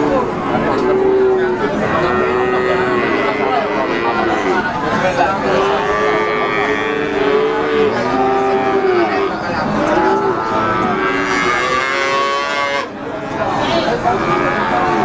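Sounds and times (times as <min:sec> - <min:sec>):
cattle mooing: 0:00.0 - 0:04.7, 0:05.5 - 0:12.9, 0:14.1 - 0:15.0.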